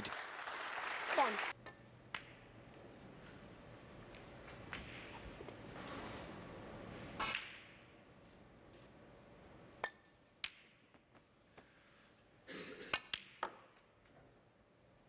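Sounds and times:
snooker balls clicking: 1.7 - 2.6, 13.0 - 13.9.

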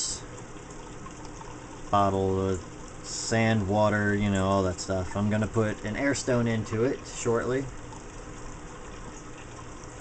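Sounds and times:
aquarium filter water splashing: 0.0 - 10.0.

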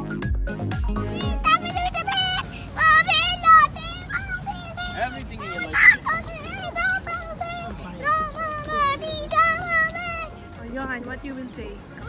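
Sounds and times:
background music: 0.0 - 12.0
child's high-pitched call: 1.1 - 10.4
soft voices: 1.1 - 10.8.

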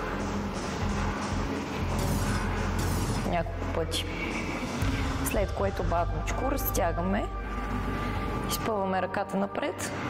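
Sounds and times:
background music with low notes: 0.0 - 10.0.

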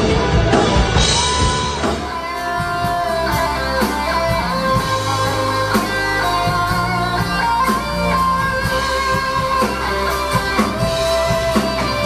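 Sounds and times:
electric guitar melody: 0.0 - 12.0
keyboard chords: 0.0 - 12.0
sustained bass notes: 0.0 - 12.0.

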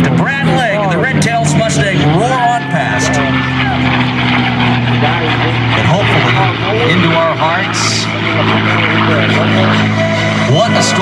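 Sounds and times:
propeller plane engine roaring: 0.0 - 11.0.

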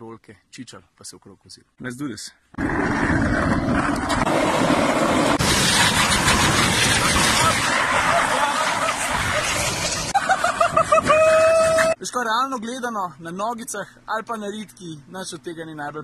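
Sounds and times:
skateboard wheels rolling on concrete: 2.6 - 12.0.

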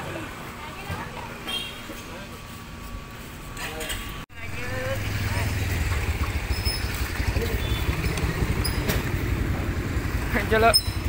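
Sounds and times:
motorcycle engine idling: 4.4 - 11.0.

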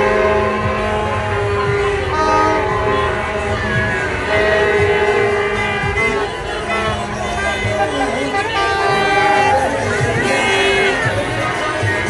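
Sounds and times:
horns sounding steady tones: 0.0 - 12.0
street crowd noise: 0.0 - 12.0.

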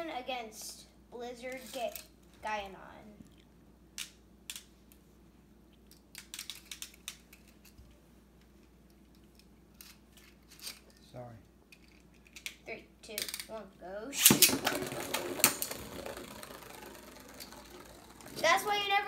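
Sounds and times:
spinning tops clattering together: 5.9 - 7.8, 11.7 - 13.5, 14.2 - 19.0
spinning tops launch snap: 14.2 - 19.0.

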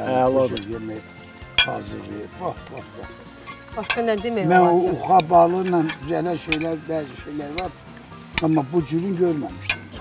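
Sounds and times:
cutlery clinking on plates: 1.6 - 1.9, 3.4 - 6.8, 9.6 - 10.0
people talking: 3.8 - 7.8, 8.4 - 9.7.

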